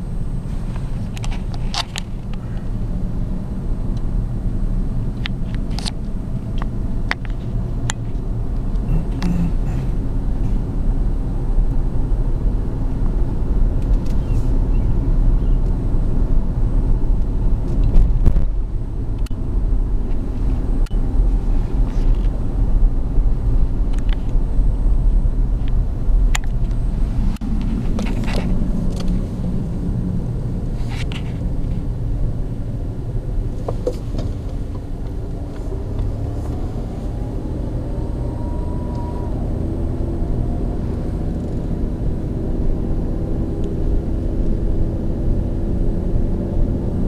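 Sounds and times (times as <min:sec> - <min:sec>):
car engine and tyre rumble: 0:00.0 - 0:47.0.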